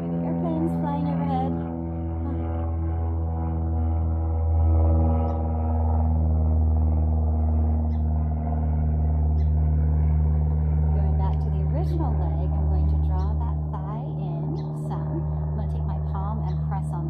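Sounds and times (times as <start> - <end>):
airplane flying overhead: 0.0 - 17.0.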